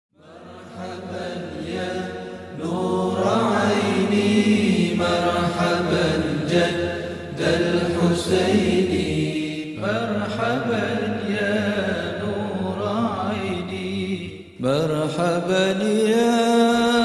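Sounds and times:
voices chanting: 0.2 - 12.8.

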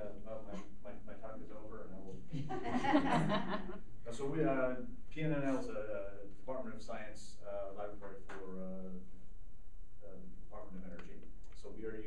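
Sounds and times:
man speaking: 0.0 - 3.4, 4.1 - 9.0, 10.0 - 12.0
steady low hum: 0.0 - 12.0.

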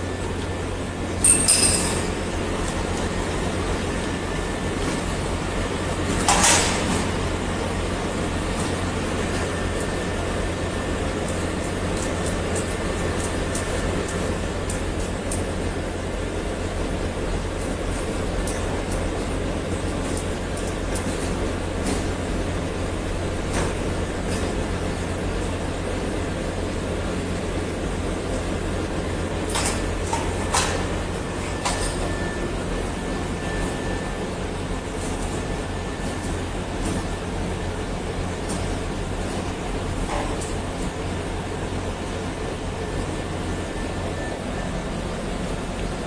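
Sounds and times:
machinery drone: 0.0 - 46.0.

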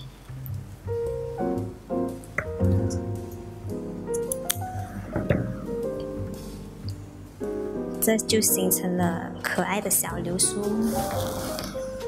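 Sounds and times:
keyboard music: 0.0 - 12.0.

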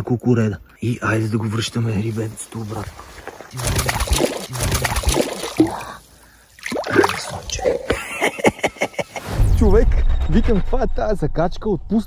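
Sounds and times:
water splashing: 2.8 - 8.4.

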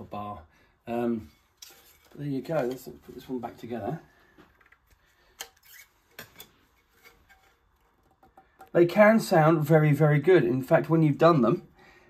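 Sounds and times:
faint clicks and metallic knocks: 4.4 - 8.8.

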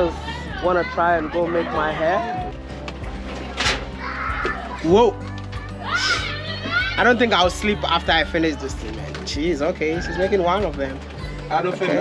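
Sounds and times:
background music: 0.0 - 12.0
child calling out: 5.6 - 7.0.

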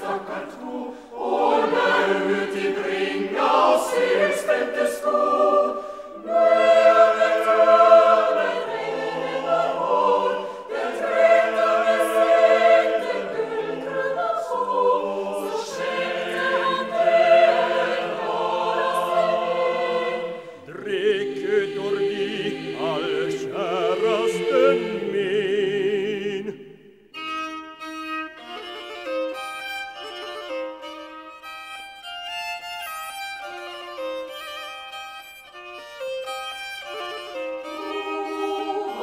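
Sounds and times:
choir singing sustained chords: 0.0 - 27.1, 36.9 - 39.0.

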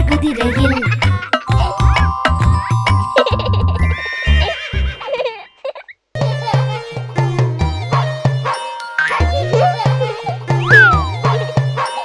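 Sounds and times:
children's song backing music: 0.0 - 4.0, 6.2 - 12.0
cartoon puppy bark: 10.6 - 11.2.

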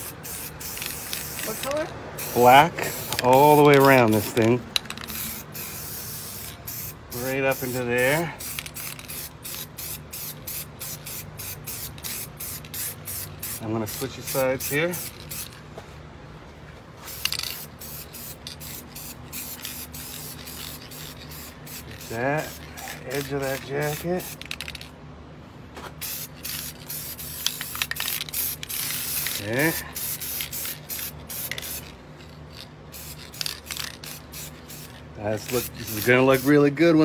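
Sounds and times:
spray paint can hissing: 0.0 - 15.6, 17.1 - 24.9, 26.0 - 36.7.

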